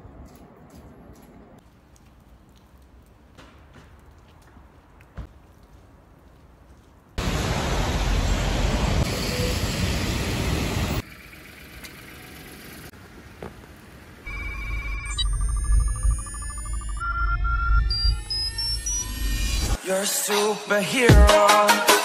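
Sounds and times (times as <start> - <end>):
rushing outdoor noise: 7.2 - 11.1
stepped beeps rising: 14.3 - 19.8.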